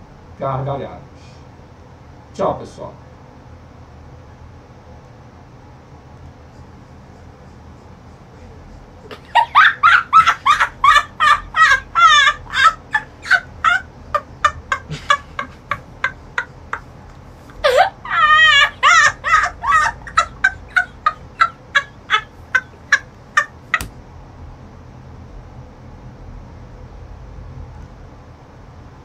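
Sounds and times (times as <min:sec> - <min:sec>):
boy laughing hard: 0:09.1 - 0:23.9.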